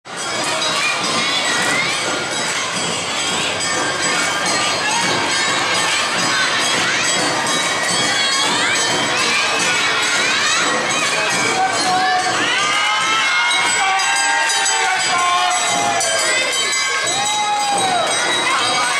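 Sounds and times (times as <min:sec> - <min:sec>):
crowd noise: 0:00.0 - 0:18.9
children shouting chants: 0:00.1 - 0:18.9.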